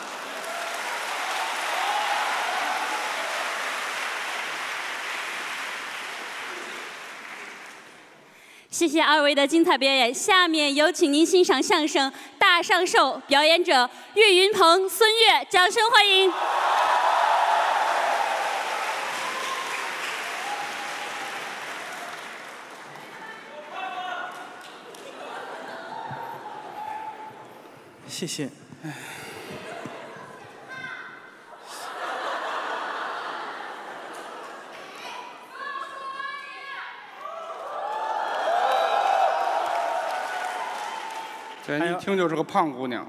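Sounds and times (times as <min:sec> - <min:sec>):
large audience applauding: 0:00.0 - 0:08.3, 0:16.3 - 0:26.1, 0:37.3 - 0:41.9.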